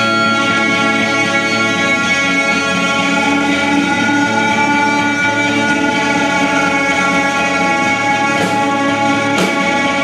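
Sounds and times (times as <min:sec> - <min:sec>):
distorted electric guitar chords: 0:00.0 - 0:10.0
drums: 0:00.0 - 0:10.0.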